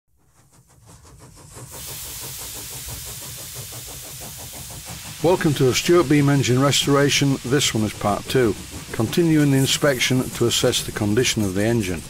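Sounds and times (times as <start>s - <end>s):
steam engine exhaust beat: 0.2s - 12.0s
steady steam hiss: 0.3s - 12.0s.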